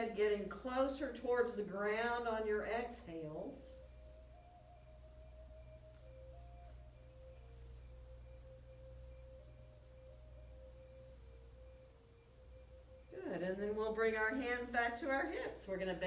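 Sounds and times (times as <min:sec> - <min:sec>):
soft slow melody: 0:00.0 - 0:14.4
low steady hum: 0:00.0 - 0:16.0.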